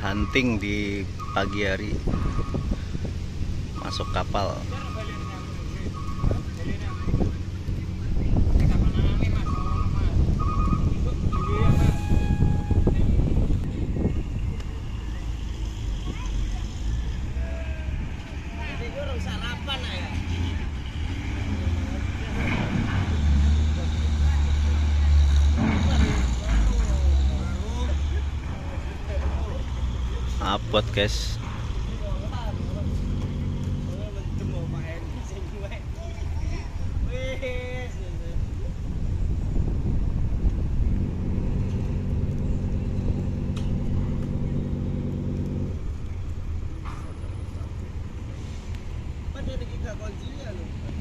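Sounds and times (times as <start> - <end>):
people's voices: 3.7 - 39.1
short beeps: 11.4 - 13.1
diesel truck engine running: 39.5 - 49.4.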